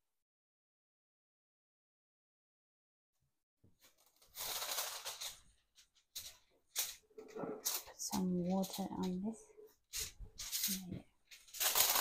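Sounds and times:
aluminium foil crinkling: 3.8s - 9.3s, 9.9s - 12.0s.

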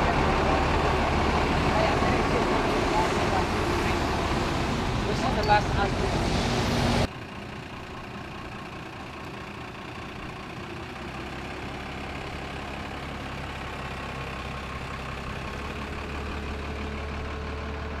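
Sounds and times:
bus engine rumble: 0.0s - 18.0s
traffic noise: 0.0s - 18.0s.

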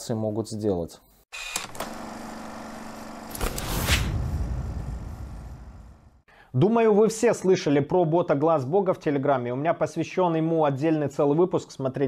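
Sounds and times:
rising whoosh with low rumble: 3.4s - 6.2s.

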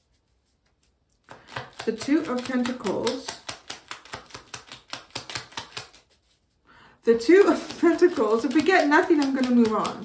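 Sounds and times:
cards being shuffled: 0.1s - 10.0s.

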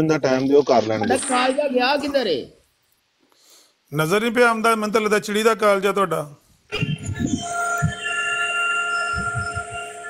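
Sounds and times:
electronic ringing tone: 6.9s - 10.0s.

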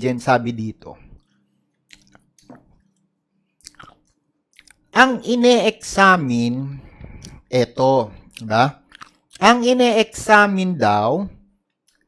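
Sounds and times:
man speaking: 0.0s - 1.2s, 4.6s - 11.4s
lip and tongue clicks: 1.9s - 3.0s, 3.6s - 4.8s, 8.3s - 9.4s.

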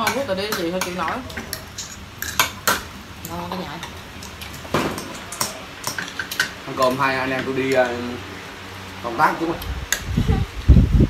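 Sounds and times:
utensils clinking on ceramic bowls: 0.0s - 8.0s.

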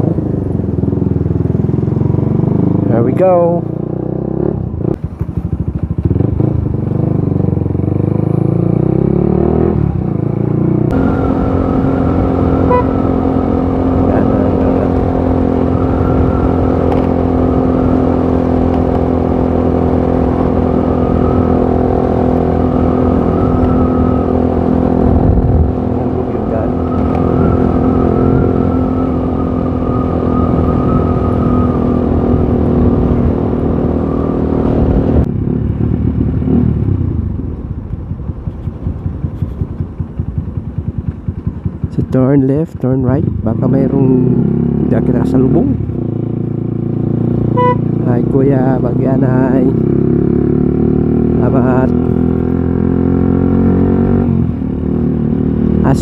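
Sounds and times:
motorcycle engine running: 0.0s - 56.0s
wind rumble on microphone: 9.6s - 47.6s.

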